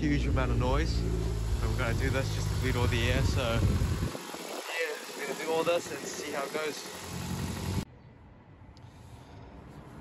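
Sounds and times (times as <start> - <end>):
car engine running: 0.0 - 7.8.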